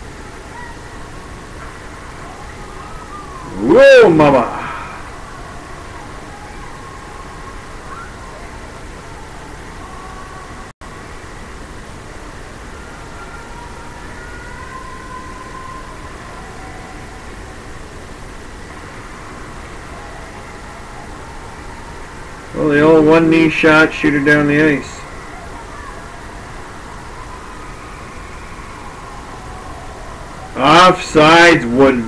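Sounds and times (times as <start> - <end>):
faint tones: 0.0 - 32.0
low background noise: 0.0 - 32.0.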